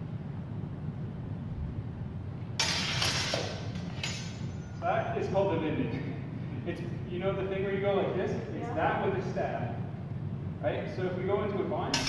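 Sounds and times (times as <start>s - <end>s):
low steady rumble: 0.0s - 12.0s
swords clashing: 2.6s - 4.8s.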